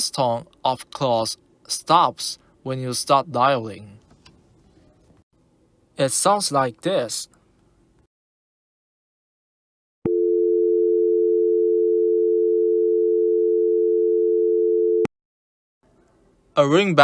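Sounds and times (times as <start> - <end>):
telephone dial tone: 10.1 - 15.1.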